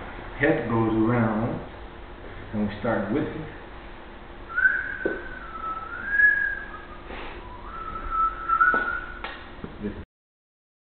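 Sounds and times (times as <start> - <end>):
man whistling a tune: 4.5 - 9.3.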